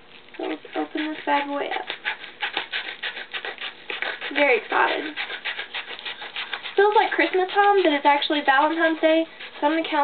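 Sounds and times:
scissors cutting paper: 0.4 - 10.0.

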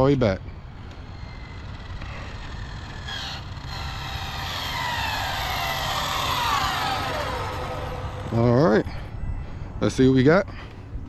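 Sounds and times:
electric motor whine: 0.6 - 8.9.

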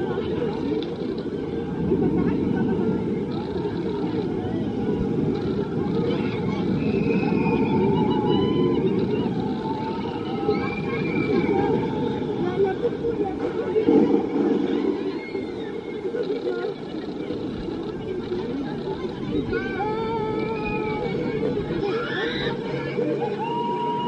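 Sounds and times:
steady low rumble: 0.0 - 23.4.

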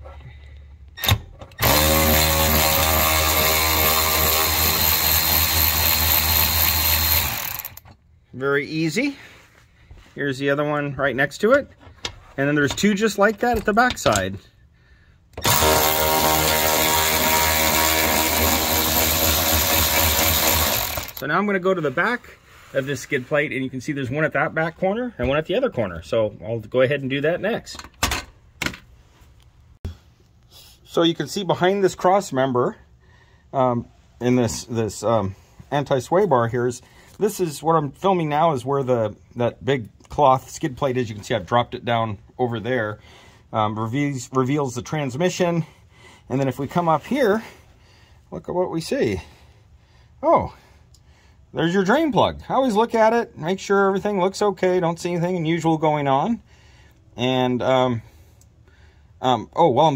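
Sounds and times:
electric ratchet running: 1.6 - 7.8, 15.4 - 21.2.

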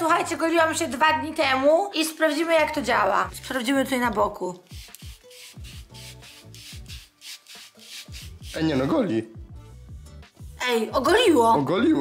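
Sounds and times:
crystal pad rasping on skin: 4.6 - 8.6.

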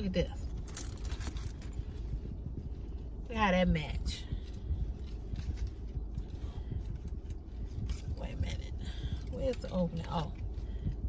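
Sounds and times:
car cabin rumble: 0.0 - 11.0
clothing rustling: 0.2 - 10.9.

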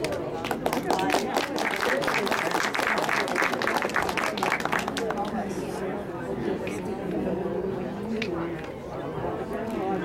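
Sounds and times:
crowd applauding: 0.0 - 5.4.

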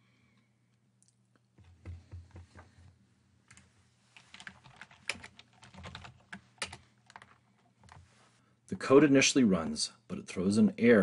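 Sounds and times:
typing on computer keyboard: 4.2 - 8.0.

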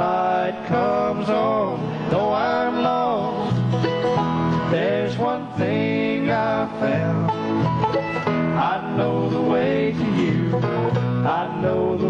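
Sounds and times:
acoustic guitar and mandolins strumming: 0.0 - 12.0.

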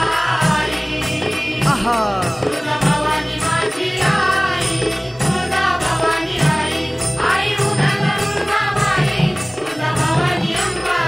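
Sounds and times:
steady repeating drumbeat: 0.0 - 11.0.

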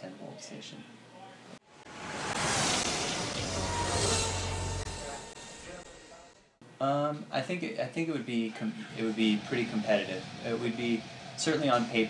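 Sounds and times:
rushing whoosh: 1.7 - 6.3
low rumble: 1.7 - 6.6.

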